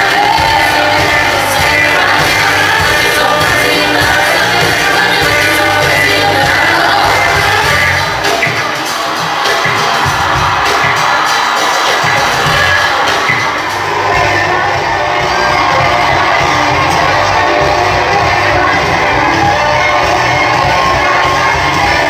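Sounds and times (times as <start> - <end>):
audience cheering and shouting: 0.0 - 22.0
loud music over sound system: 0.0 - 22.0.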